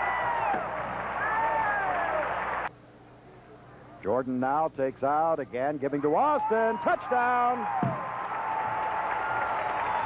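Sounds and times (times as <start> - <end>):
stadium crowd cheering and applauding: 0.0 - 2.7, 6.3 - 10.0.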